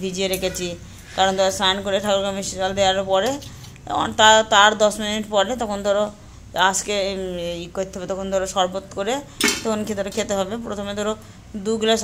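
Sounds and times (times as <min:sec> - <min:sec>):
woman talking: 0:00.0 - 0:12.0
knife clinking on steel plate: 0:00.3 - 0:00.8.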